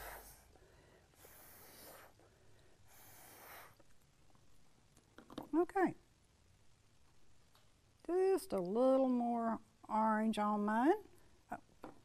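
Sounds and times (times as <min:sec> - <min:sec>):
breath puffs through a straw: 0:01.2 - 0:03.8.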